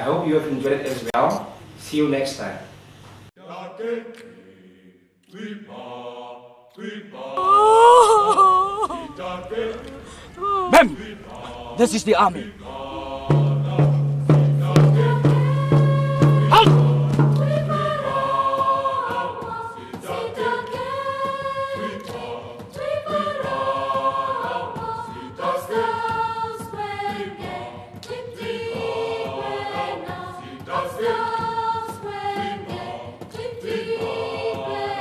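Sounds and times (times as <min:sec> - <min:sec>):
group of voices singing: 0:03.4 - 0:35.0.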